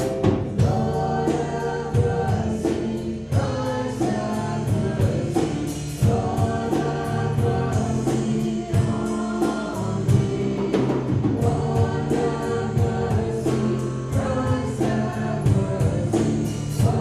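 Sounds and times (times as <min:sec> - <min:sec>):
group singing: 0:00.0 - 0:17.0
live worship band playing: 0:00.0 - 0:17.0.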